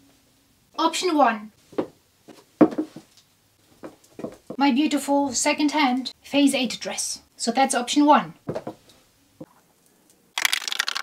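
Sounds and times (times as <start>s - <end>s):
crackling rustle-clicks: 9.5s - 11.0s.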